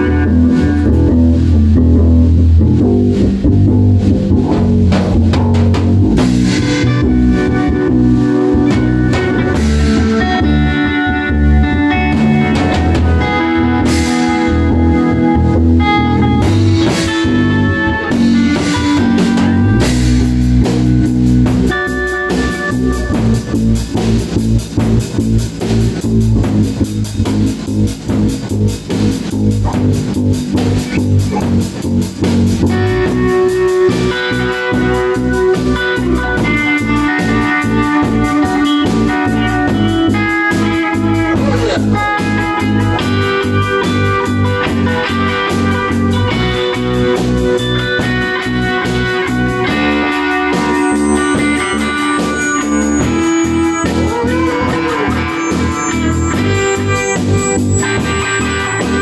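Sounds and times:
rock band playing: 0:00.0 - 0:59.0.

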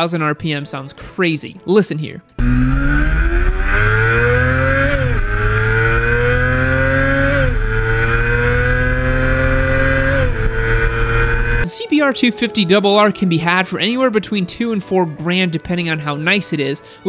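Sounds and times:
motorcycle engine revving: 0:02.4 - 0:11.7.

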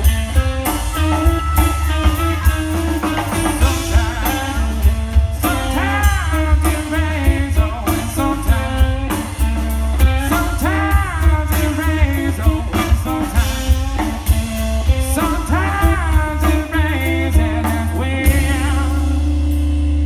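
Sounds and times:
person singing: 0:00.0 - 0:14.1, 0:14.9 - 0:20.0
bass: 0:00.0 - 0:20.0
drum kit: 0:00.0 - 0:20.0
electric guitars: 0:00.0 - 0:20.0.

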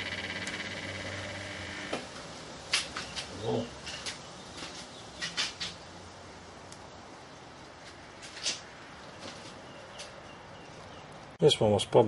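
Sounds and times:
high whine: 0:00.0 - 0:02.2
transformer hum: 0:00.0 - 0:02.3.

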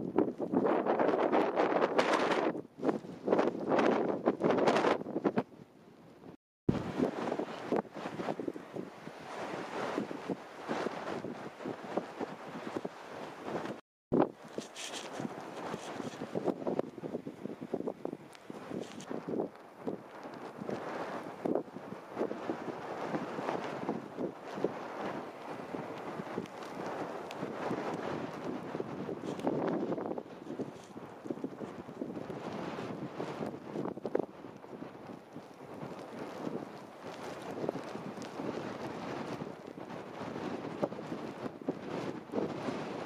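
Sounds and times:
wind on microphone: 0:00.0 - 0:43.0
footsteps crunching through snow: 0:14.2 - 0:16.8.

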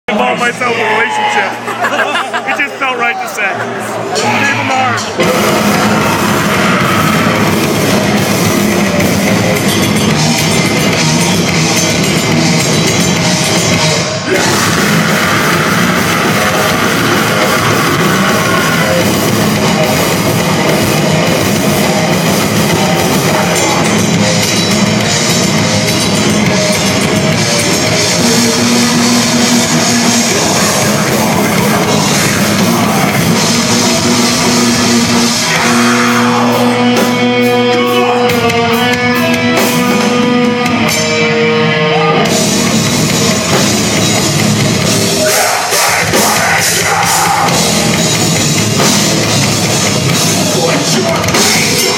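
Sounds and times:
live heavy rock band: 0:00.1 - 0:51.9
drum kit: 0:04.2 - 0:51.9.

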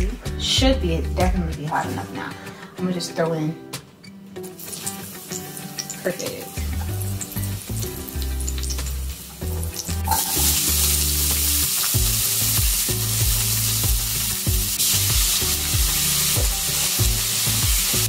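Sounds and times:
onions sizzling in hot oil: 0:04.4 - 0:18.0.

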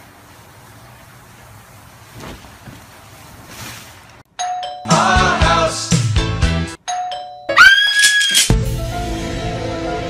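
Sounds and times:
doorbell chime: 0:04.4 - 0:05.1, 0:06.8 - 0:07.6.

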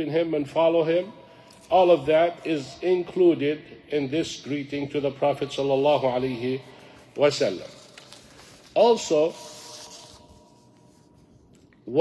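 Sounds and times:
paper sheets rustling: 0:07.1 - 0:11.4.

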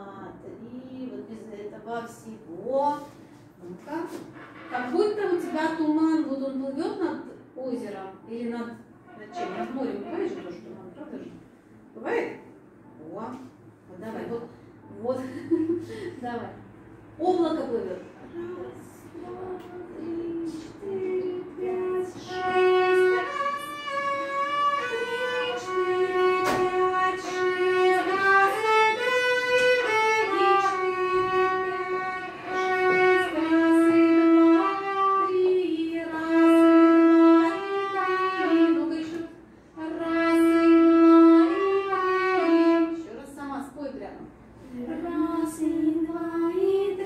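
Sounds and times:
violin playing slow melody: 0:20.9 - 0:39.0, 0:39.8 - 0:43.0.

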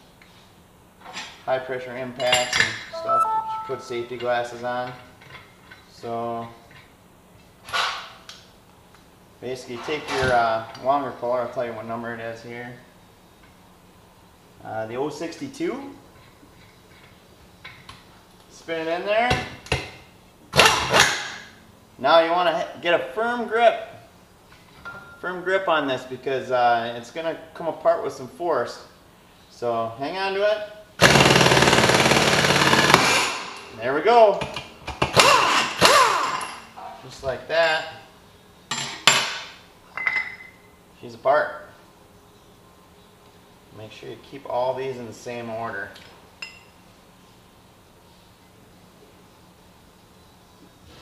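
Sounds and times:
low steady hum: 0:00.0 - 0:07.7.

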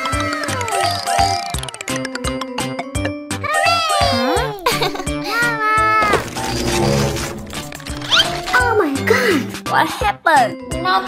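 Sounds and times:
children's music with steady beat: 0:00.0 - 0:05.8.

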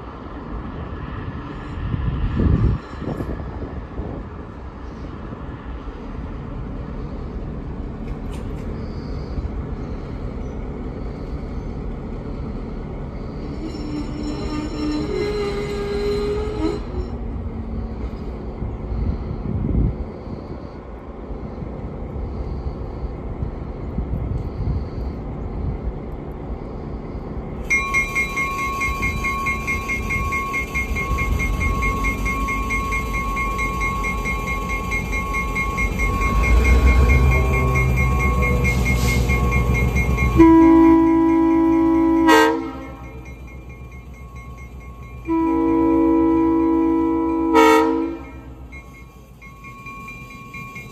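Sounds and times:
diesel locomotive engine rumble: 0:00.0 - 0:50.9
locomotive bell ringing: 0:11.0 - 0:17.4, 0:27.6 - 0:50.9
locomotive air horn blast: 0:36.3 - 0:43.1, 0:45.3 - 0:48.6.

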